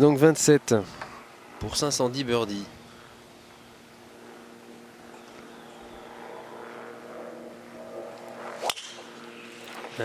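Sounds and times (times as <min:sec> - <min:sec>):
low steady hum: 0:00.0 - 0:10.0
club striking golf ball: 0:08.6 - 0:09.1.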